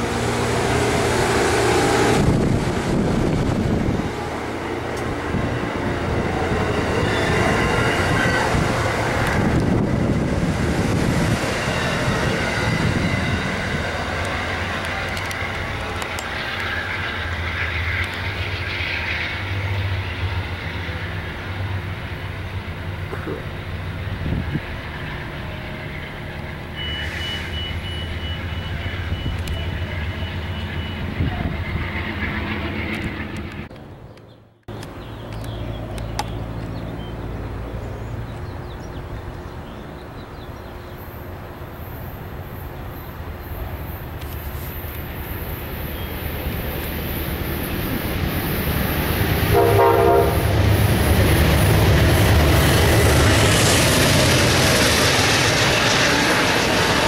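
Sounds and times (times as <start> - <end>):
train wheels on rails: 0.0 - 33.9, 34.7 - 57.0.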